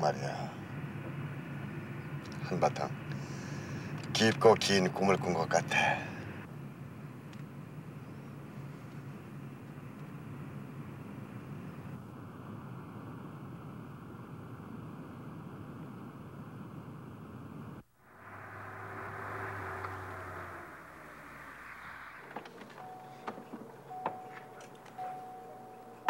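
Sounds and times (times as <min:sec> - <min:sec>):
car engine and road noise: 0:00.0 - 0:26.0
faint low engine hum: 0:00.0 - 0:26.0
faint ringing tone: 0:18.0 - 0:26.0
car door opening clicks: 0:22.2 - 0:25.3.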